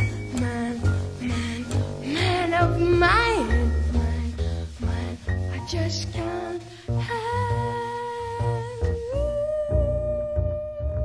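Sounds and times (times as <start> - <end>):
jazz trio accompaniment: 0.0 - 11.0
walking double bass line: 0.0 - 11.0.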